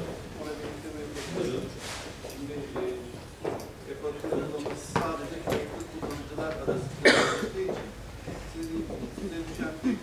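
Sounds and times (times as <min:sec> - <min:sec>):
murmured talk in a hall: 0:00.0 - 0:10.0
person coughing: 0:07.0 - 0:07.5.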